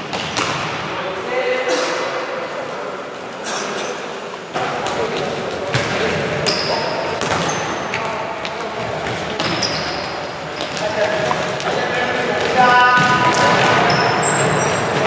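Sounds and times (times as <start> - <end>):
shoes squeaking on court: 4.8 - 11.8, 12.4 - 15.0.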